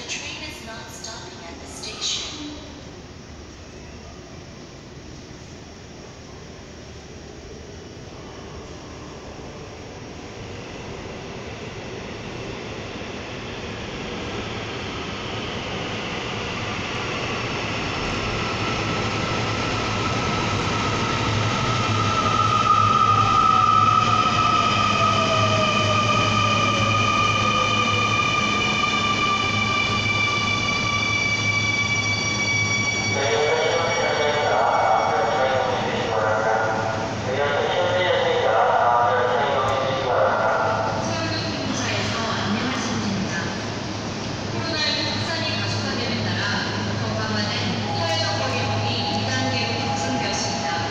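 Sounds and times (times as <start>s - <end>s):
subway train electric motor whine: 0.0s - 50.9s
voice announcement: 33.0s - 43.6s, 44.6s - 50.9s.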